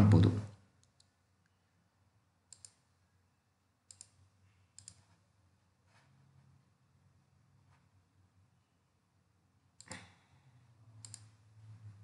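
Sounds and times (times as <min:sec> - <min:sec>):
computer mouse clicks: 0:00.8 - 0:01.6, 0:02.5 - 0:02.9, 0:03.9 - 0:05.2, 0:09.8 - 0:10.2, 0:11.0 - 0:11.4.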